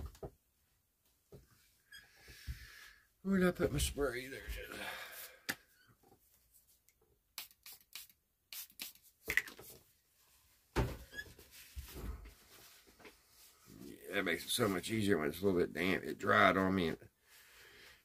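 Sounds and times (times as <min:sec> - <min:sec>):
spray bottle squirts: 0:07.4 - 0:09.6.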